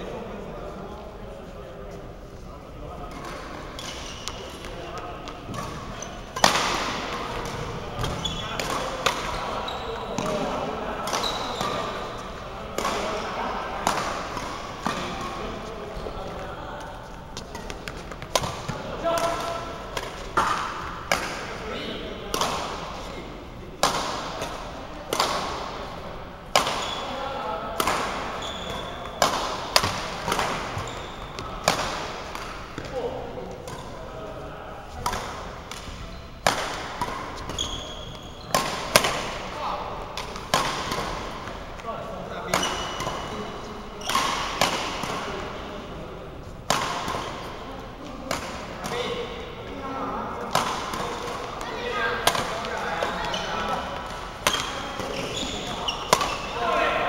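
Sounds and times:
voices in a hall: 0.0 - 57.0
rackets striking shuttlecock: 3.1 - 9.4, 11.0 - 12.0, 12.7 - 13.2, 17.4 - 21.5, 27.8 - 32.9, 35.0 - 39.5, 40.1 - 41.8, 50.5 - 56.6.

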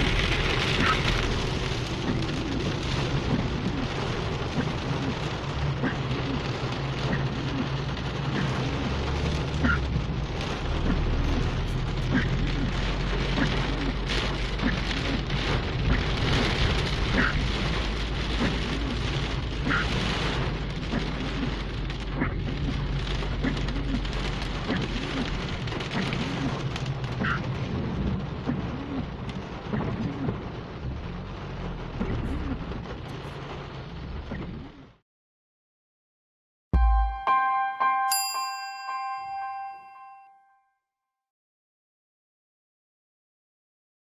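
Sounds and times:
steady low rumble: 0.0 - 6.6
heavy rain on car roof: 0.0 - 35.0.

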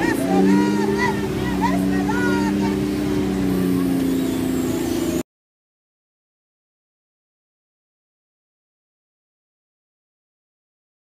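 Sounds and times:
raised voices: 0.0 - 5.2
truck engine idling: 0.0 - 5.2.

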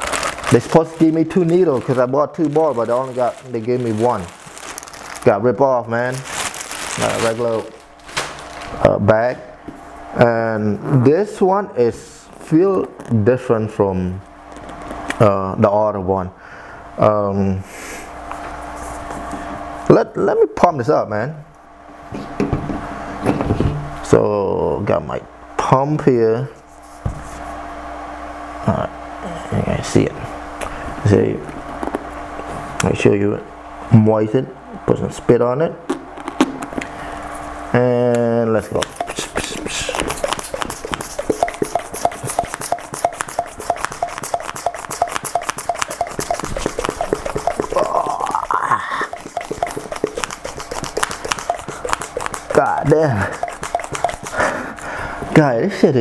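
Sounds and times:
hand pump squeaky strokes: 38.8 - 54.5.

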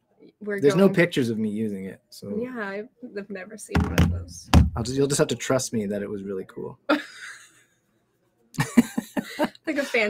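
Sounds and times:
person laughing: 8.6 - 10.0.

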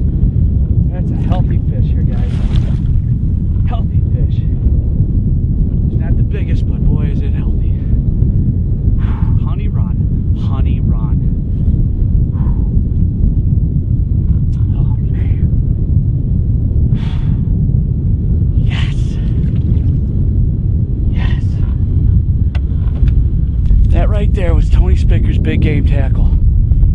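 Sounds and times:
wind buffeting microphone: 0.0 - 26.9.

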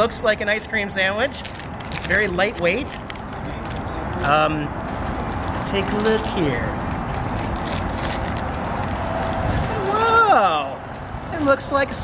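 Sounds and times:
wrapper crinkling: 1.2 - 11.9.

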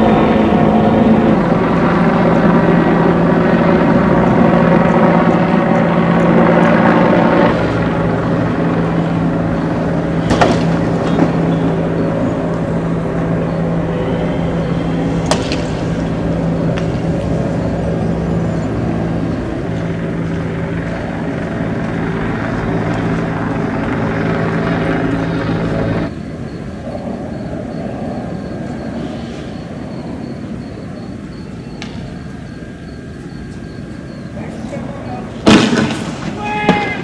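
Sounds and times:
engine drone: 0.0 - 37.0.

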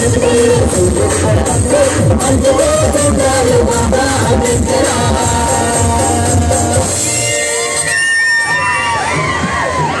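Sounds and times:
audience shouting and cheering: 5.2 - 10.0.

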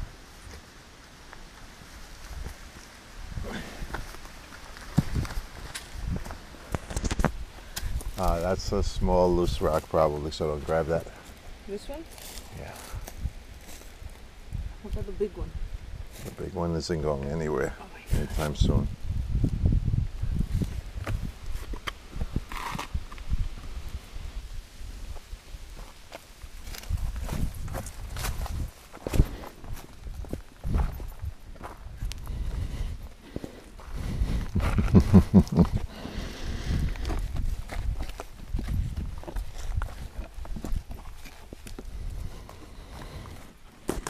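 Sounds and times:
boots stepping and scuffing on rock: 3.8 - 8.5.

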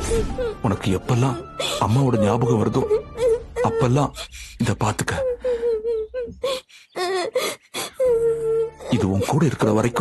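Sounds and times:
person crying and wailing: 1.2 - 10.0.

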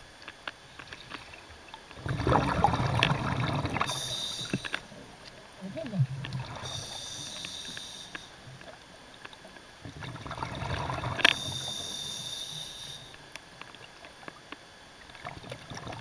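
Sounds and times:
bubbling exhale underwater: 2.0 - 7.9, 9.8 - 12.9
hissing breaths with whistle: 3.9 - 4.8, 6.7 - 8.3, 11.3 - 13.2.

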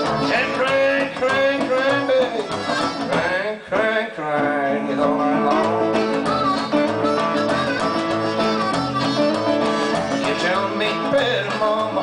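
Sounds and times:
harmonica bending notes: 0.0 - 3.6, 4.4 - 12.0
plucked upright bass: 0.0 - 12.0
strummed resonator guitar: 0.0 - 12.0.

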